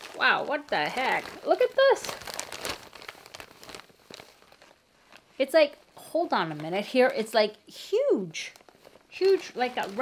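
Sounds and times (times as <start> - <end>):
nylon bag crinkling: 0.0 - 10.0.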